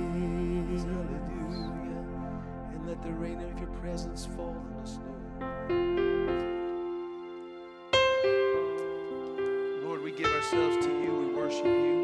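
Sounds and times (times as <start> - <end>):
wavering voice: 0.0 - 6.7
electric piano playing slowly: 0.0 - 12.0.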